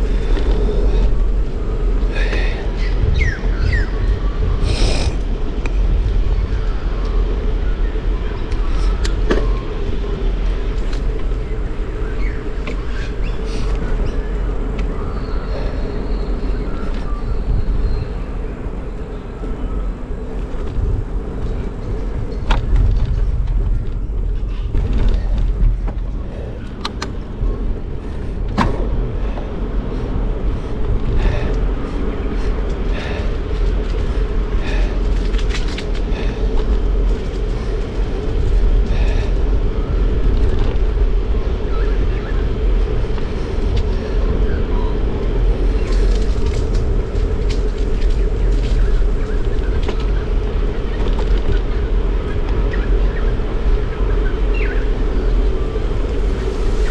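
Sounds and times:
bicycle clicks and rattles: 0.0 - 3.2, 3.9 - 16.0, 20.2 - 56.9
bicycle tyre and frame noise: 0.0 - 56.9
wind rumble on microphone: 0.0 - 56.9.

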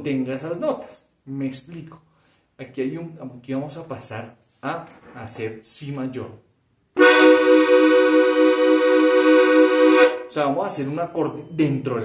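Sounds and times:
button accordion chord: 7.0 - 10.3.

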